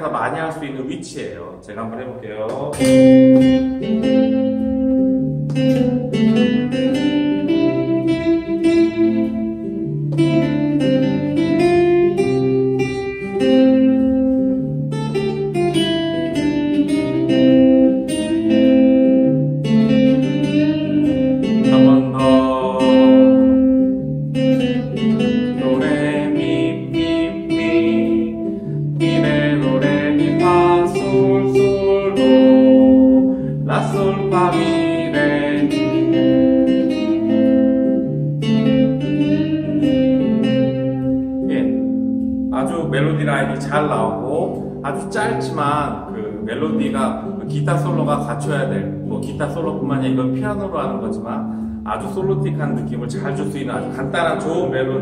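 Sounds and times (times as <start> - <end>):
backing chords and bass line: 2.3 - 55.0
acoustic guitar melody: 2.8 - 55.0.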